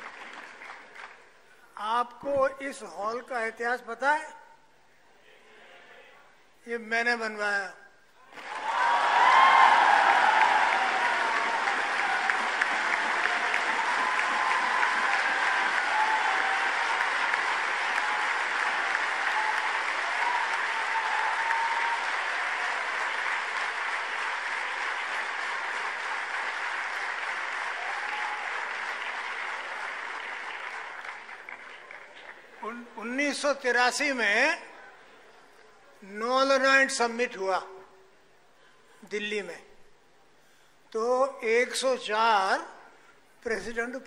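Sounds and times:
audience applauding: 0:00.0 - 0:01.3, 0:08.3 - 0:32.6.

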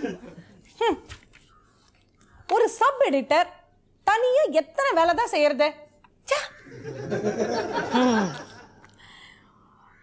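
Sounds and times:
woman giggling: 0:07.6 - 0:08.7
sharp catch of breath: 0:08.9 - 0:09.6.

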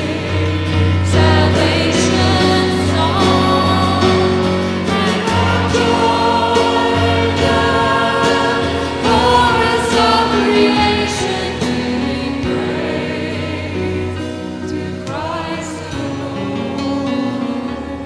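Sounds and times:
voices singing along: 0:00.0 - 0:18.0.

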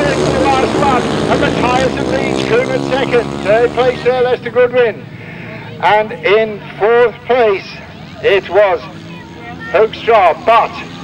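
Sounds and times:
commentator speaking: 0:00.0 - 0:11.0
racing engines droning: 0:00.0 - 0:11.0.

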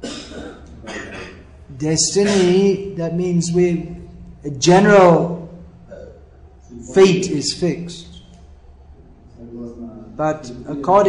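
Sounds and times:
man clearing his throat: 0:00.0 - 0:01.6, 0:02.2 - 0:02.8, 0:05.9 - 0:06.2.

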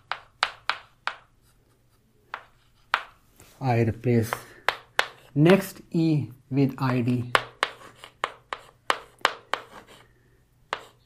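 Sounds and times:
chalk tapping on a blackboard: 0:00.0 - 0:01.3, 0:02.3 - 0:03.2, 0:04.2 - 0:05.7, 0:06.9 - 0:10.1, 0:10.7 - 0:11.0.

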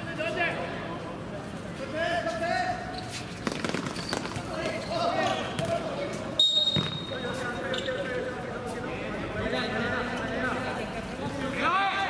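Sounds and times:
referee whistle blast: 0:06.4 - 0:07.2
ball thuds on hard court: 0:06.7 - 0:07.0.

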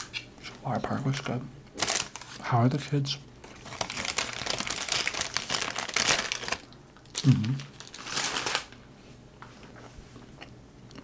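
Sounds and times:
paper bag crinkling: 0:01.8 - 0:02.4, 0:03.4 - 0:08.8.

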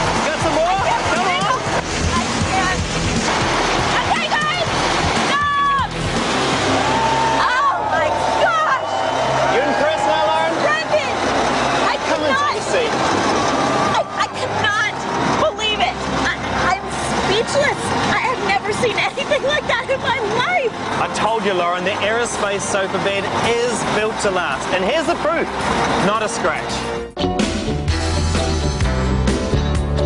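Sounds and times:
background music: 0:00.0 - 0:30.0
heavy truck engines running: 0:00.0 - 0:30.0
excited voices: 0:03.7 - 0:06.0, 0:06.6 - 0:21.2
people laughing: 0:18.8 - 0:20.6.

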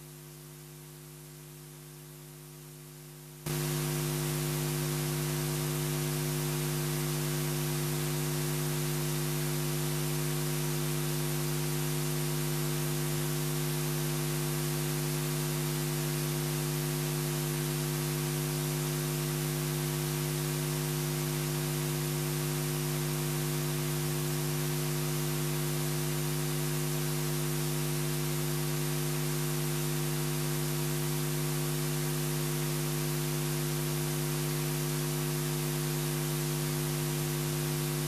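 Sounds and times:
audio line hiss: 0:00.0 - 0:38.0
electrical hum: 0:03.5 - 0:20.2.

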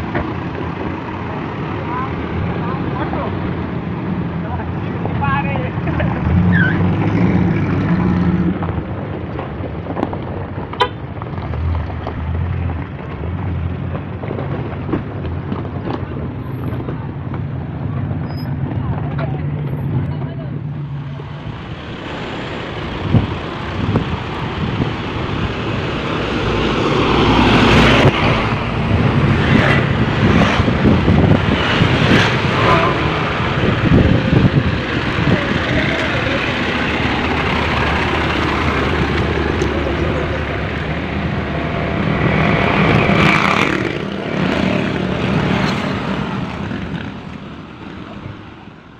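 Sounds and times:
car engine running: 0:28.5 - 0:45.5.

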